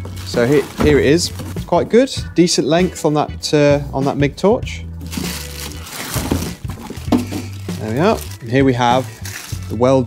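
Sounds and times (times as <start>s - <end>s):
plastic packaging crinkling: 0.0s - 1.6s, 5.0s - 10.0s.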